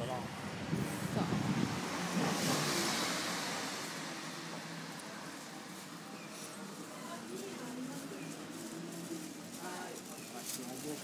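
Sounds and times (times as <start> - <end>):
van driving past: 0.6 - 7.7.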